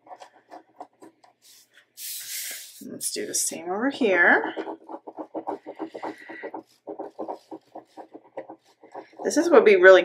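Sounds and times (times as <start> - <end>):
pen scratching on paper: 0.0 - 10.0.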